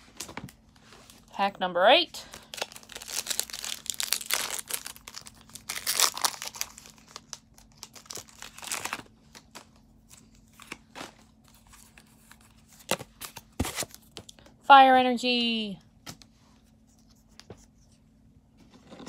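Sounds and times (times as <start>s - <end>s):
foil wrapper crinkling and tearing: 2.2s - 13.0s.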